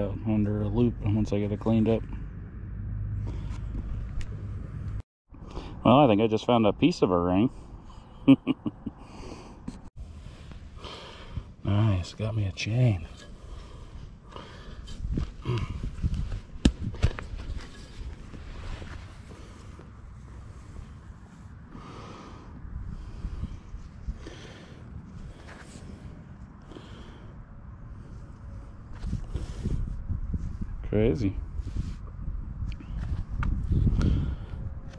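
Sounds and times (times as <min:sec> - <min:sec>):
hand digger scraping and knocking: 0:14.3 - 0:19.5
short breaths: 0:21.7 - 0:27.4.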